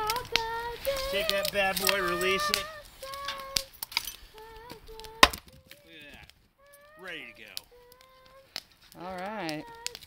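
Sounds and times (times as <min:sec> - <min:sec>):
child singing faintly: 0:00.0 - 0:03.7, 0:06.6 - 0:08.6, 0:09.4 - 0:10.0
firewood pieces knocking: 0:01.2 - 0:06.4.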